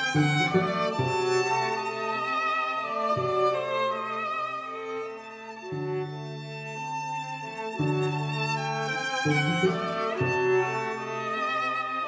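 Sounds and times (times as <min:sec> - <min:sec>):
violin melody with vibrato: 0:00.0 - 0:12.0.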